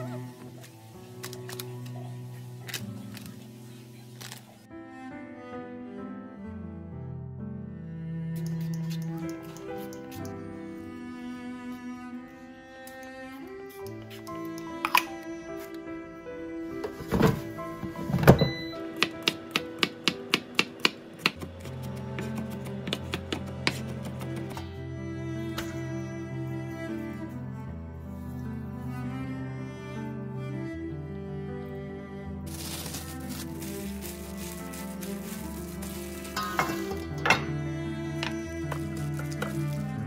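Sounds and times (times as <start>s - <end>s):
background music: 0.0s - 40.0s
gloved hand rustling sprouts: 0.4s - 4.6s, 32.5s - 37.2s, 38.6s - 40.0s.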